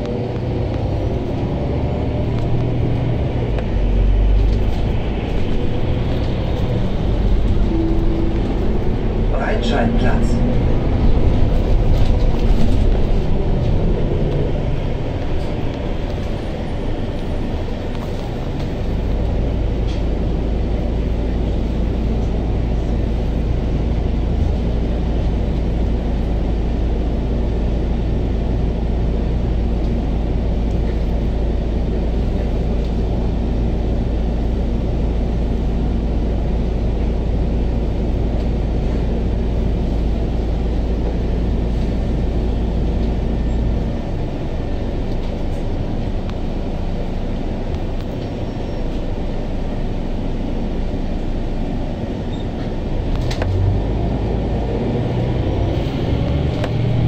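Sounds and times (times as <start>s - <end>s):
bus running noise: 0.0s - 57.0s
low engine hum: 0.0s - 57.0s.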